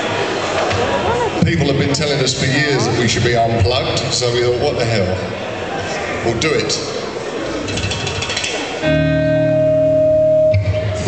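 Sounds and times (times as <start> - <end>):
held amplified chord: 8.8 - 11.0.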